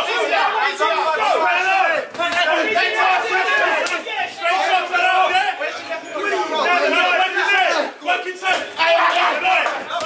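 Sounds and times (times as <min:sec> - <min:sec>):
spectators shouting: 0:00.0 - 0:10.0.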